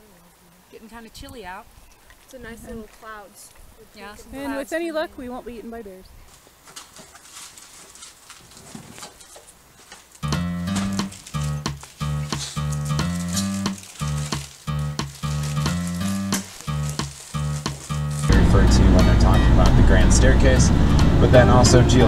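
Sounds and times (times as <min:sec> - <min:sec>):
outdoor hiss: 0:00.0 - 0:20.3
background music with bass line: 0:10.2 - 0:22.0.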